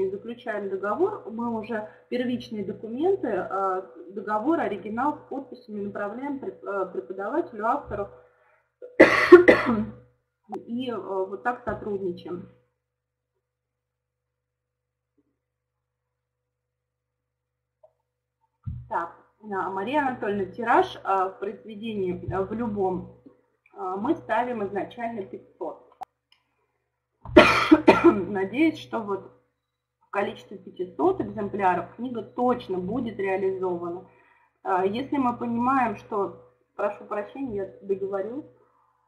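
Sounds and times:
woman coughing: 8.8 - 10.0, 27.4 - 28.3.

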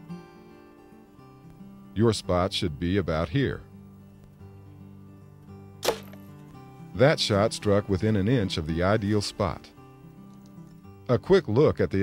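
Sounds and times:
soft guitar music: 0.0 - 12.0
arrow striking target: 5.8 - 6.3.

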